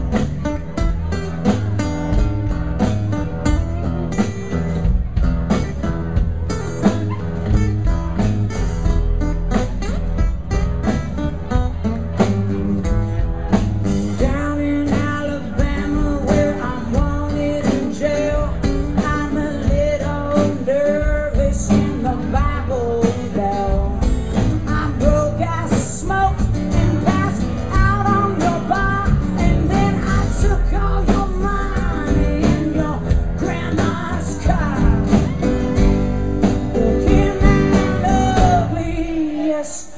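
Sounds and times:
bass guitar: 0.0s - 39.7s
acoustic guitars: 0.0s - 39.9s
drums: 0.0s - 39.9s
woman singing: 14.2s - 35.6s, 36.4s - 39.9s.

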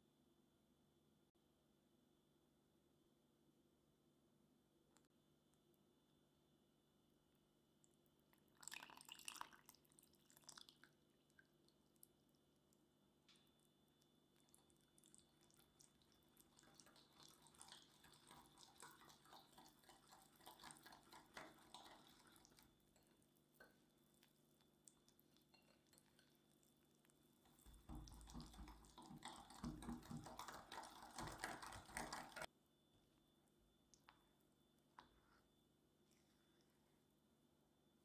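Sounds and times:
whisk beating batter in glass bowl: 15.2s - 23.8s, 27.4s - 32.5s.

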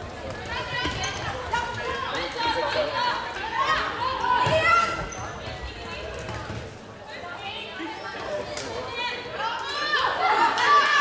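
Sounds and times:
voices calling and chattering: 0.0s - 11.0s.

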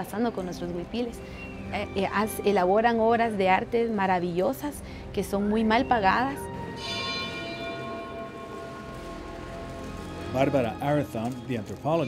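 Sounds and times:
bell-like chime ringing: 6.4s - 12.0s.

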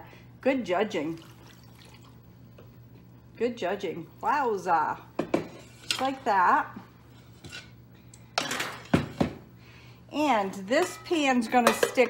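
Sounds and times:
dishes scraping and rattling: 8.4s - 9.4s, 10.8s - 12.0s.

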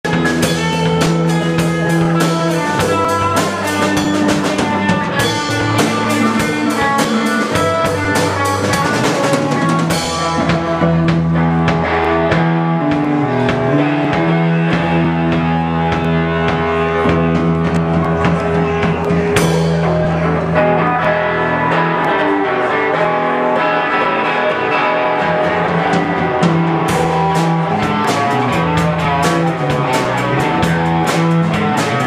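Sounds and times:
drum kit with cymbals: 0.0s - 22.4s, 23.0s - 32.0s
electric guitars through amplifiers: 0.0s - 32.0s.

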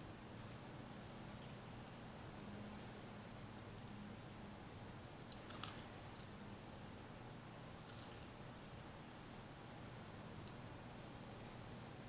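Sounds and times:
crisp chewing clicks: 5.3s - 6.0s, 7.8s - 8.3s.

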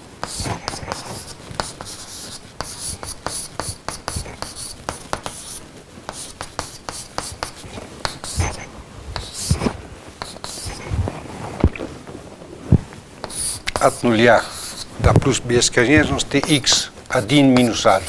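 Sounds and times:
chalk writing on blackboard: 0.2s - 10.9s, 13.2s - 15.0s, 15.9s - 18.0s.

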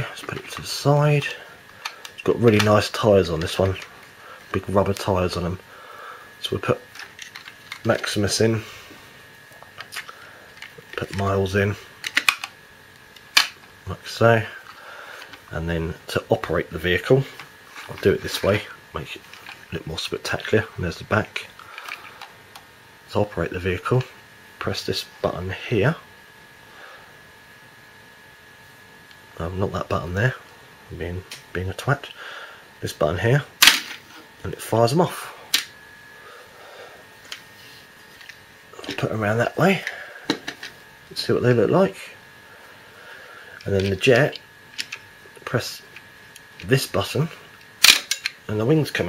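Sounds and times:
low background noise: 0.0s - 49.0s.

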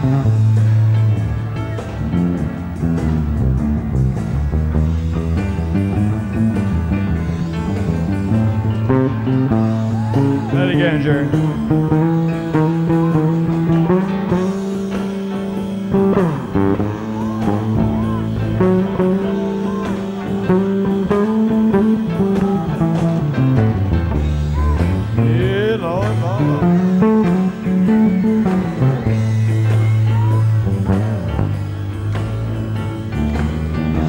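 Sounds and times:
electric bass: 0.0s - 34.0s
electric guitar with bent notes: 0.0s - 34.0s.

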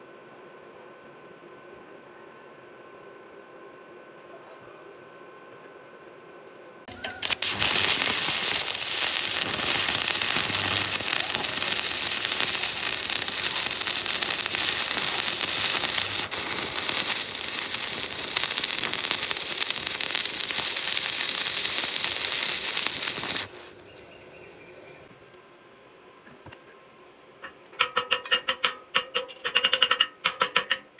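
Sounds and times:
welding arc sizzling: 6.9s - 23.9s.

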